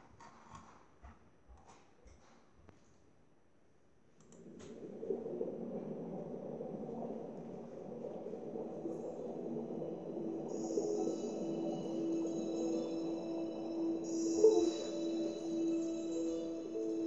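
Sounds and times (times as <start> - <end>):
underwater water wash: 4.3 - 17.0
held musical note: 8.8 - 17.0.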